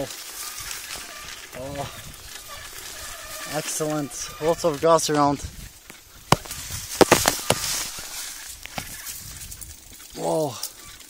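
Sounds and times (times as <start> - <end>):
bike knocks and rattles: 5.9 - 9.0
tall grass swishing: 6.4 - 9.0.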